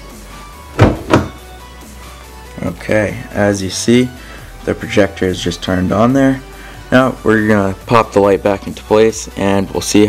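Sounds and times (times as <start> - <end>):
car door latch clunks: 0.8 - 1.4.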